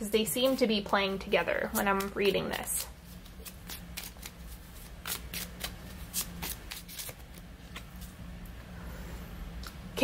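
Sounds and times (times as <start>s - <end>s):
cards being shuffled: 1.6s - 8.2s.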